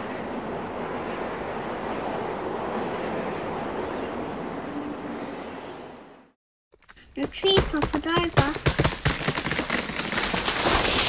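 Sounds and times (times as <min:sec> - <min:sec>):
crackling rushing destruction: 0:08.6 - 0:11.0.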